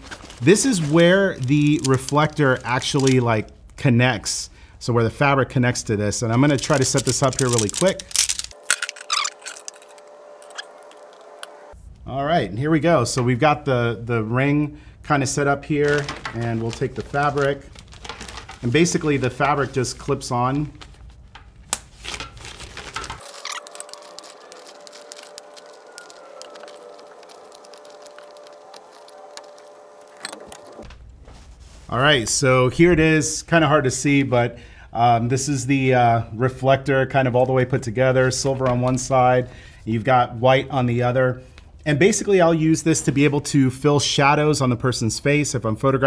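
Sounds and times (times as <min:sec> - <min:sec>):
person speaking: 0:00.4 - 0:04.2, 0:05.8 - 0:12.3, 0:15.1 - 0:17.7.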